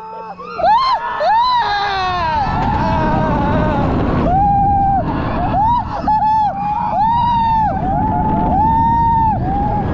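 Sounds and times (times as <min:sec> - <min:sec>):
roller coaster rumble: 0:00.3 - 0:09.9
wind rushing: 0:01.9 - 0:09.9.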